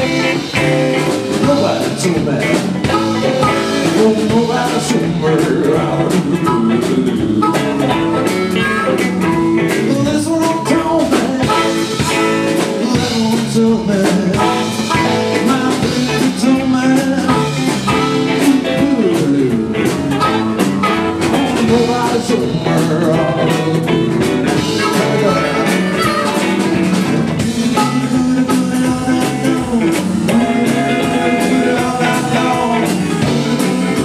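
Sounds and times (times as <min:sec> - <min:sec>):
blues band playing: 0:00.0 - 0:34.0
person singing: 0:00.0 - 0:34.0.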